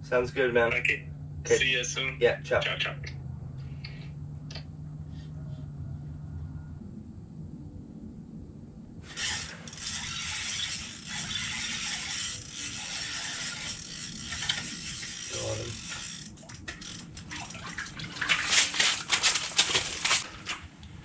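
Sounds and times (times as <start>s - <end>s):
fishing reel gears whirring: 9.1s - 18.0s.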